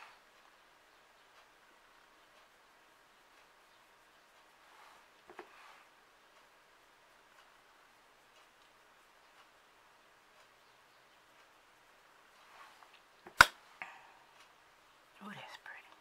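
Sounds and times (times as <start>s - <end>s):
faint room hiss: 0.0s - 16.0s
sharp click: 13.2s - 13.6s
person speaking quietly: 15.2s - 16.0s
person whispering: 15.2s - 16.0s.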